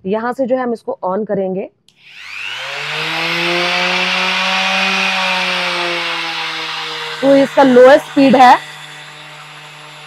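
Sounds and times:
orbit sander motor whine: 1.9 - 10.0.

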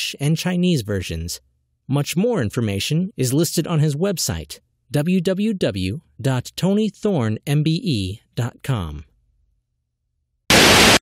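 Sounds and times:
tv static hiss burst: 10.5 - 11.0.

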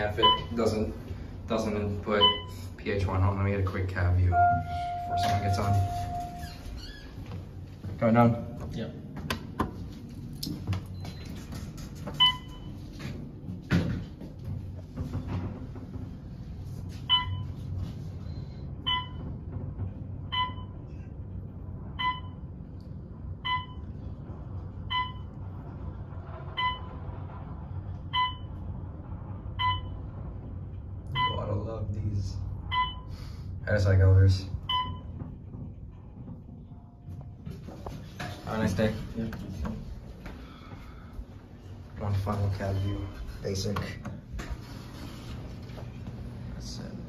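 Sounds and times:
elevator floor beep: 0.0 - 3.1, 4.0 - 7.1, 10.7 - 13.1, 16.8 - 21.2, 21.8 - 25.6, 26.5 - 27.3, 28.0 - 30.4, 31.0 - 31.7, 32.6 - 33.2, 34.6 - 36.0, 42.1 - 43.6
elevator car humming: 0.0 - 47.0.

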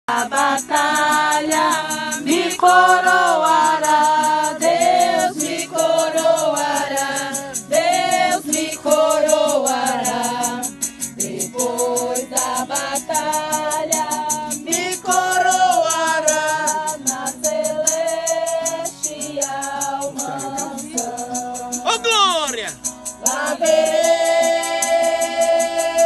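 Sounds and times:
group singing a hymn: 0.1 - 22.0, 23.0 - 26.0
shaker beat: 0.1 - 26.0.

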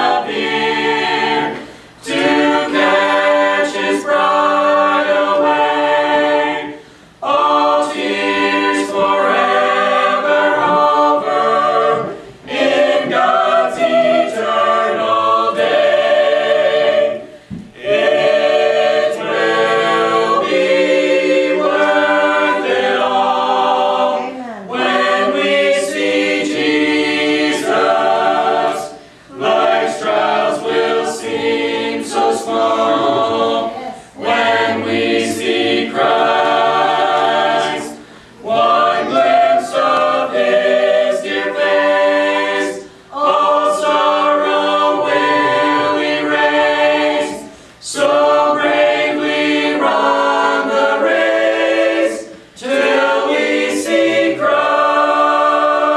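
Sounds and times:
a cappella ensemble singing: 0.0 - 55.9.

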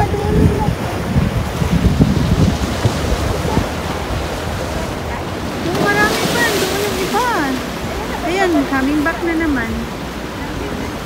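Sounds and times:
ocean surf over rocks: 0.0 - 11.0
wind buffeting microphone: 0.0 - 11.0.

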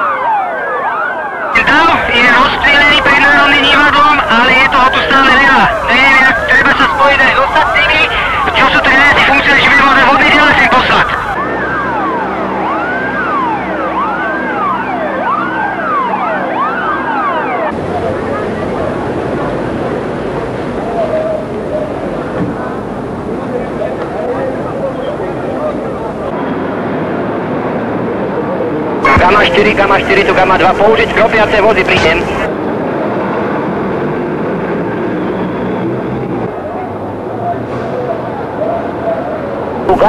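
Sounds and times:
police sirens wailing: 0.0 - 40.0
noisy background: 1.5 - 40.0
truck engine rumbling: 1.6 - 40.0.

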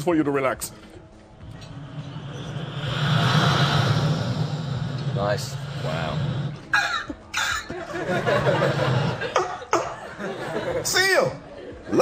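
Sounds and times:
low hum: 0.7 - 9.9
breathy mouth rushing noise: 1.7 - 6.8.

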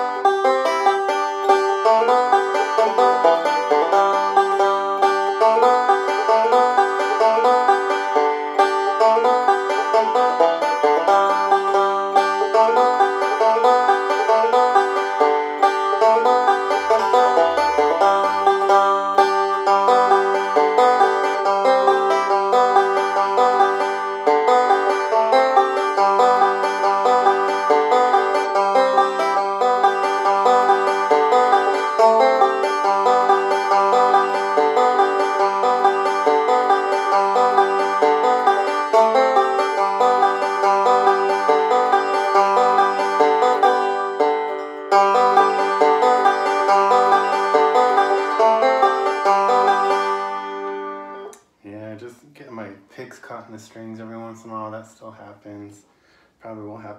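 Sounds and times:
banjo played clawhammer style: 0.0 - 56.9.

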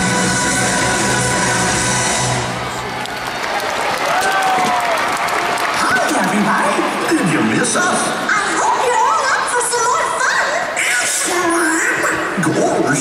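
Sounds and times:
show music on sound system: 0.0 - 2.9
audience applauding and cheering: 0.0 - 8.2
crowd voices: 0.0 - 13.0.

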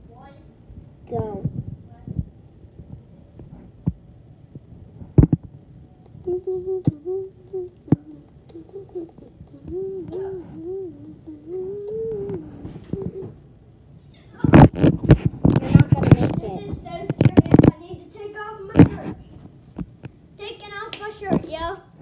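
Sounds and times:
child humming: 6.0 - 13.4.

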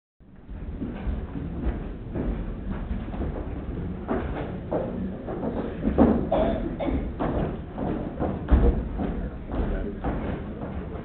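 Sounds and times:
footsteps on hollow stage: 0.3 - 11.0
room background noise: 0.3 - 11.0.

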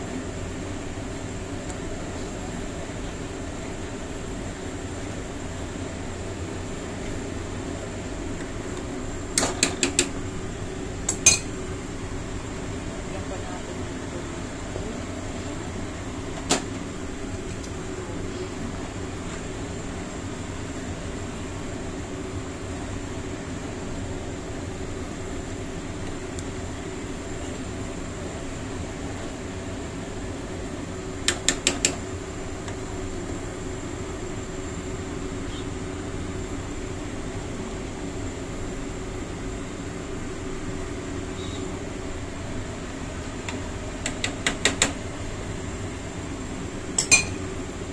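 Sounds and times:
steady mechanical hum: 0.0 - 47.9.

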